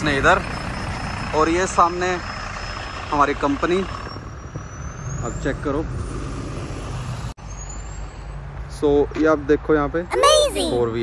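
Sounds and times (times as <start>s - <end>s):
bus engine rumbling: 0.0s - 8.8s, 10.1s - 11.0s.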